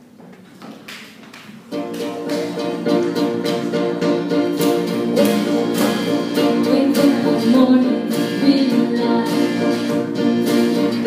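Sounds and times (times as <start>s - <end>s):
acoustic guitar strumming chords: 1.7s - 11.0s.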